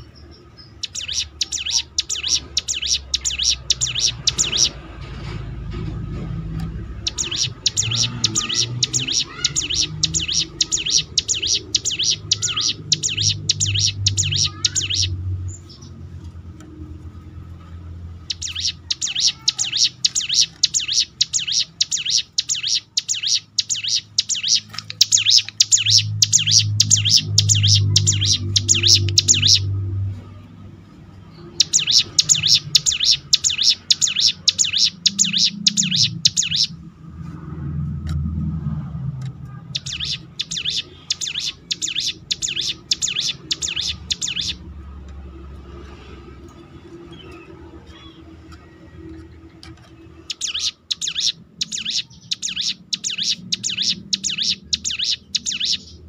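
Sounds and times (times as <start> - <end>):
bird singing rapid high notes: 0.0 - 5.1, 6.7 - 16.1, 18.0 - 30.0, 31.3 - 36.8, 39.6 - 44.7, 49.9 - 56.0.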